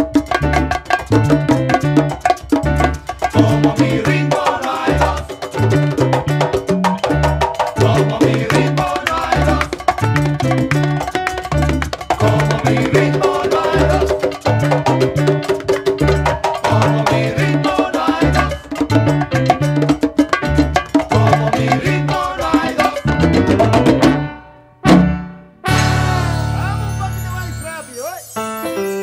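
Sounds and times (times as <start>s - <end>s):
latin percussion: 0.0s - 29.0s
salsa band playing: 0.0s - 29.0s
bass line: 23.0s - 27.6s.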